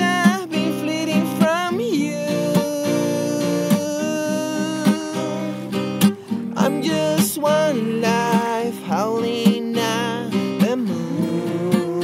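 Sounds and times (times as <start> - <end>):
sliding lead melody: 0.0 - 11.9
strummed acoustic guitar chords: 0.0 - 12.0.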